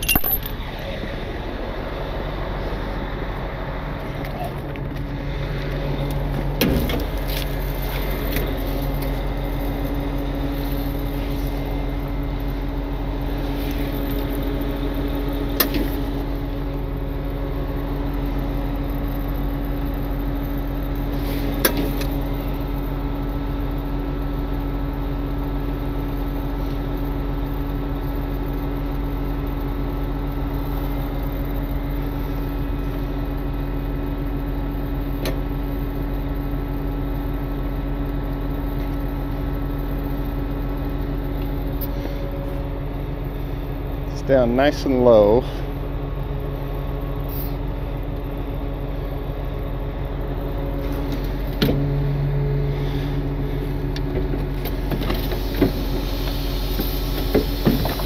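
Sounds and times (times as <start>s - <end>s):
diesel engine humming: 0.0s - 58.0s
higher hum: 28.7s - 57.6s.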